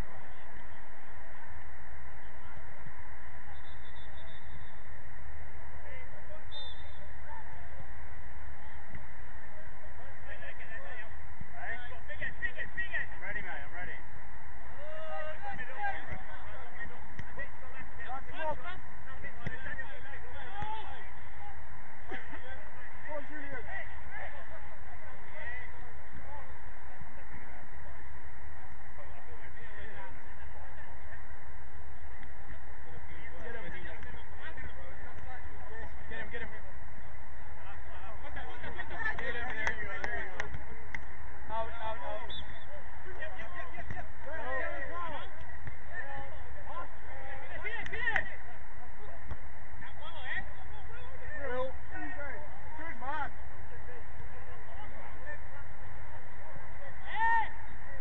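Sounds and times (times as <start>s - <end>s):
steady background hum: 0.0s - 58.0s.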